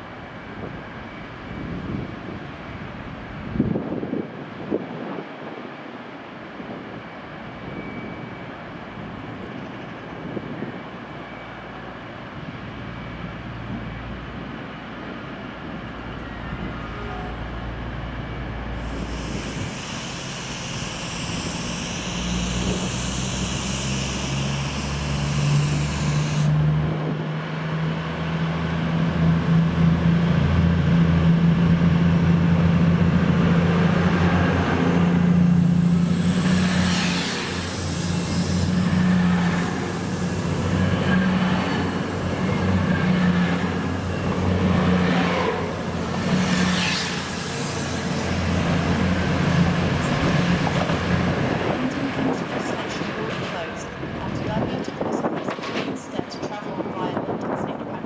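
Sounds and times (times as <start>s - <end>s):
diesel train engine droning: 6.9s - 58.0s.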